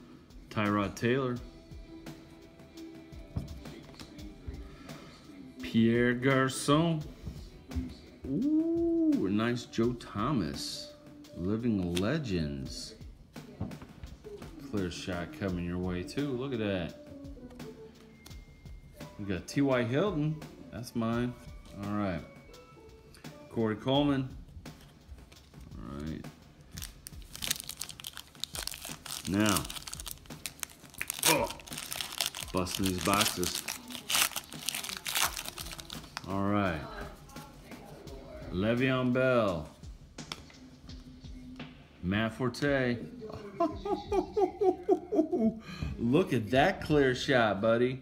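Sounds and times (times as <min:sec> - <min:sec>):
faint music: 0:00.0 - 0:48.0
foil wrapper crinkling: 0:26.7 - 0:36.3.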